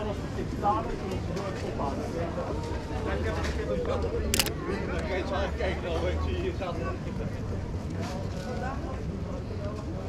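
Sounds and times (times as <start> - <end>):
crowd chatter: 0.0 - 10.0
camera shutter click: 4.3 - 4.5.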